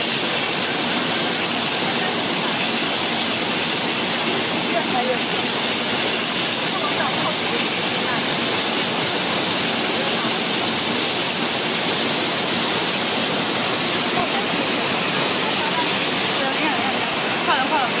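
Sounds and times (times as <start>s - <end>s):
water rushing from spray nozzles: 0.0s - 18.0s.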